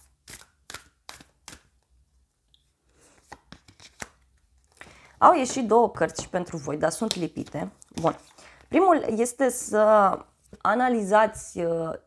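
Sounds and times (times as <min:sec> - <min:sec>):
cards tapping and sliding: 0:03.2 - 0:04.2.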